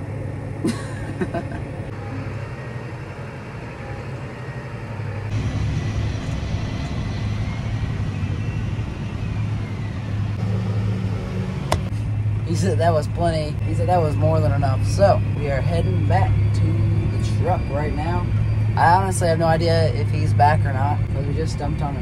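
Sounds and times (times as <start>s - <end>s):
tractor engine running: 0.0s - 22.0s.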